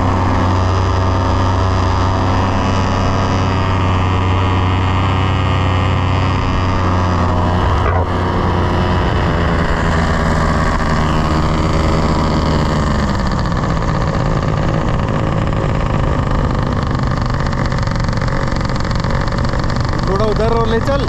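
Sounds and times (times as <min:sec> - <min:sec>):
paramotor engine and propeller: 0:00.0 - 0:21.0.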